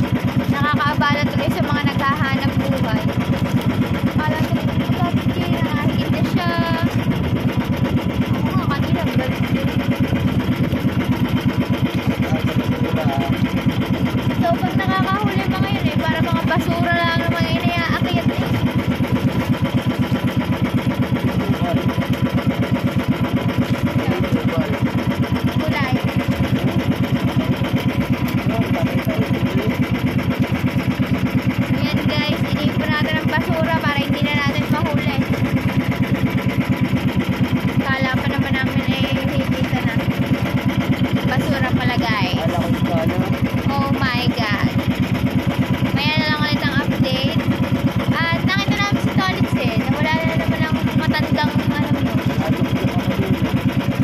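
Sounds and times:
boat engine running: 0.0s - 54.0s
woman talking: 0.4s - 3.3s, 4.0s - 7.0s, 8.3s - 9.6s, 14.3s - 18.6s, 25.5s - 26.2s, 31.7s - 35.3s, 37.8s - 40.1s, 41.2s - 42.5s, 43.6s - 44.8s, 45.9s - 47.4s, 48.1s - 52.0s.

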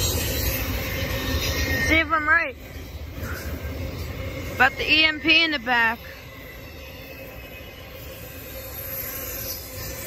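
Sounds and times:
freight train rolling past: 0.0s - 10.0s
steel wheels on rails: 0.0s - 10.0s.

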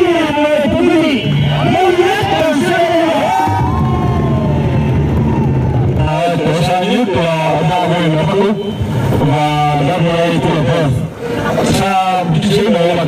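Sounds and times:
man speaking over loudspeaker: 0.0s - 3.7s, 5.9s - 13.0s
faint crowd: 0.0s - 13.0s.

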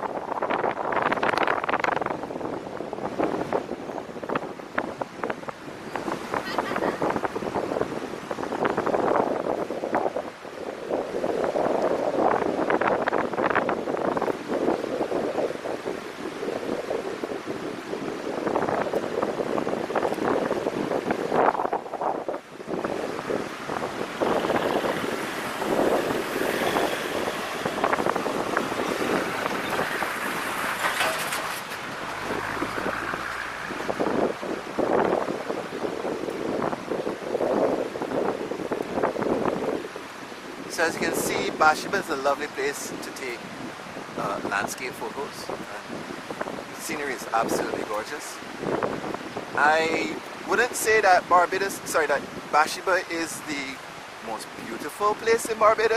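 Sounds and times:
wind buffeting microphone: 0.0s - 55.9s.

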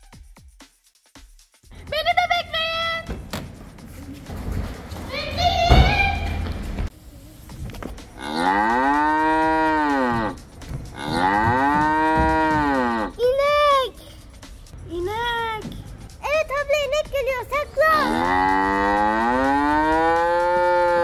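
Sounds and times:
cow mooing: 8.2s - 10.4s, 11.0s - 13.2s, 18.1s - 21.0s.

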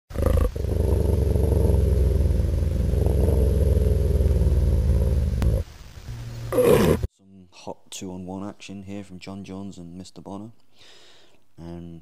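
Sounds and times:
deep rough animal growl: 0.1s - 5.6s.

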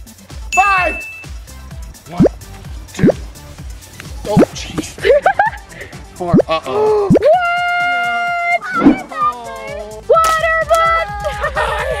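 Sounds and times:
background music with beat: 0.0s - 12.0s
rising bloop sound effects: 3.0s - 3.2s, 7.1s - 7.3s.

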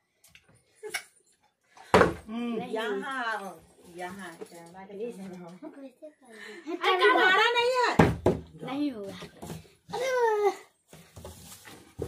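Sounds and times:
child's high-pitched cry: 9.9s - 10.8s
faint knocks and handling noises: 10.8s - 12.0s.

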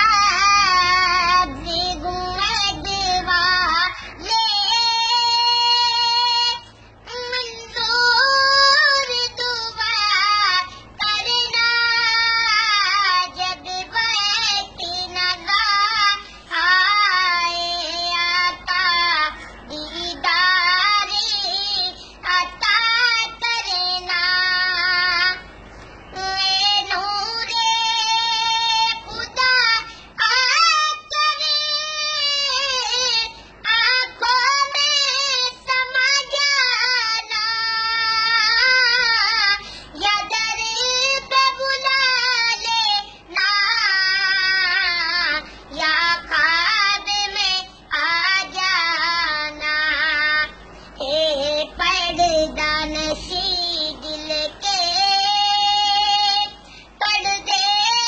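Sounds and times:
boy singing unaccompanied: 0.0s - 58.0s.

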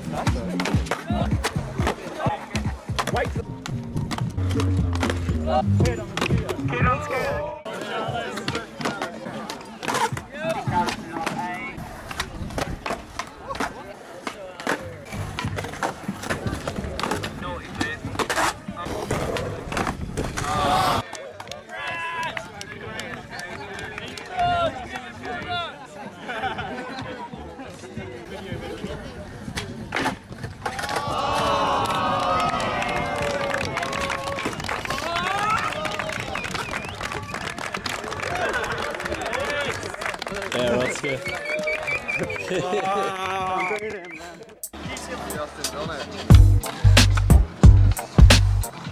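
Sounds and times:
skateboard wheels rolling on concrete: 0.0s - 48.9s
crowd cheering and shouting: 20.4s - 23.0s, 30.7s - 45.2s.

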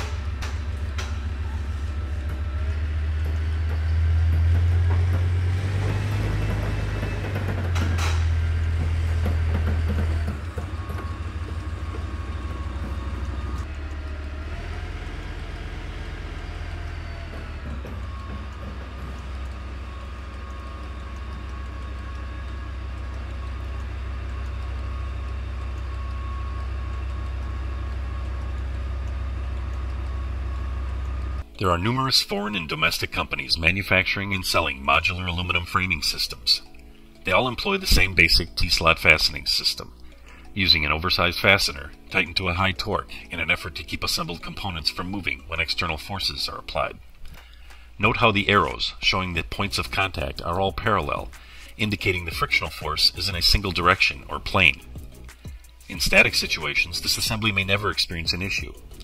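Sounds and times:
tank engine rumbling with whine: 0.0s - 59.0s.

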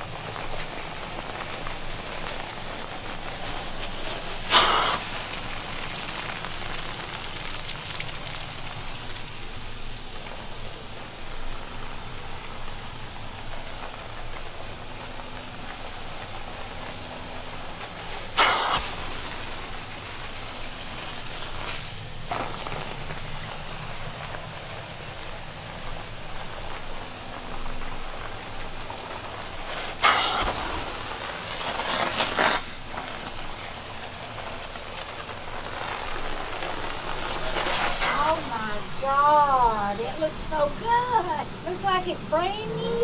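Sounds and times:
carpet cleaner suction hiss: 0.4s - 25.3s, 27.5s - 43.0s
loud rush of air: 2.6s - 7.4s, 15.6s - 24.6s, 29.5s - 43.0s
carpet extraction wand hissing: 4.1s - 6.5s, 18.4s - 22.7s, 29.7s - 32.9s, 36.7s - 41.3s.

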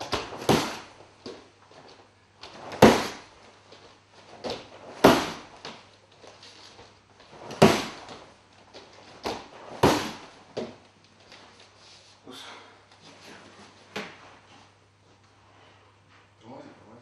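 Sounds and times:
kicks smacking a foam shield: 0.0s - 1.4s, 2.5s - 3.3s, 4.4s - 5.8s, 7.4s - 8.2s, 9.2s - 10.8s.

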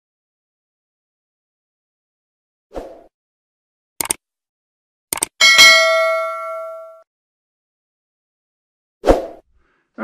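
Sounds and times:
quick double click: 5.1s - 5.3s
bright bell ding: 5.4s - 7.0s.

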